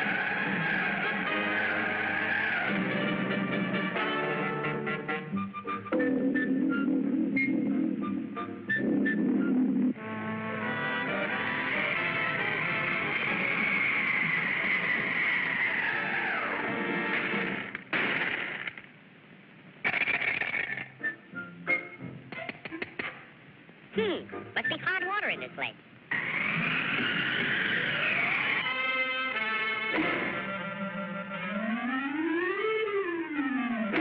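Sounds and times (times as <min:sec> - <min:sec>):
short noisy bursts: 0:10.6 - 0:18.9, 0:19.8 - 0:21.0
cartoon music: 0:24.0 - 0:25.8.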